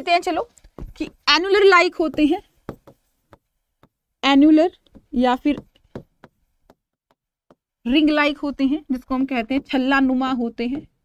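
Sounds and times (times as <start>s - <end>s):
person speaking: 0.0s - 3.4s
marker tapping on whiteboard: 0.7s - 4.0s, 4.8s - 7.7s.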